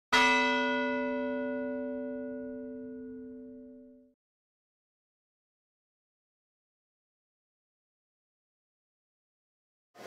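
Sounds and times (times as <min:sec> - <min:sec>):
bell-like chime: 0:00.1 - 0:04.2.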